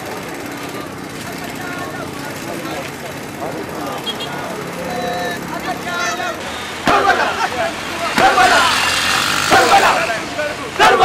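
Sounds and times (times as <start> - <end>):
moving crowd hum: 0.0 - 11.0
crowd chanting in unison: 6.4 - 11.0.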